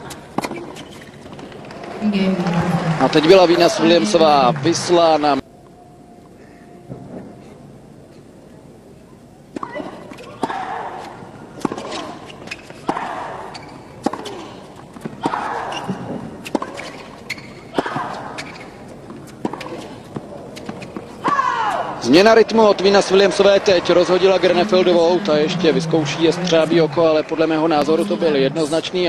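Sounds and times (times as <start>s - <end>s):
racket striking tennis ball: 14.0s - 17.1s
player grunting: 24.5s - 27.0s.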